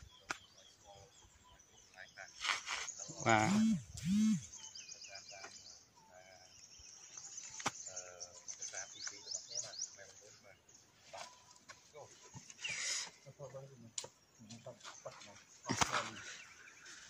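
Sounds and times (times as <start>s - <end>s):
loud voiced bird calls: 0.0s - 11.3s
small birds chirping: 0.0s - 17.0s.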